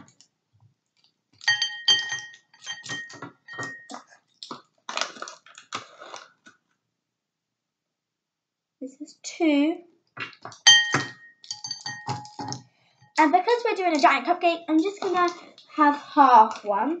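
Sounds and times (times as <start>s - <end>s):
spoon knocking against bowl: 1.5s - 4.0s, 10.5s - 12.5s.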